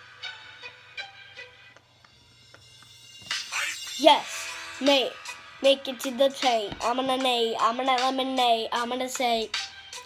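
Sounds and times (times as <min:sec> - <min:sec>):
faint instrumental music: 0:00.0 - 0:10.0.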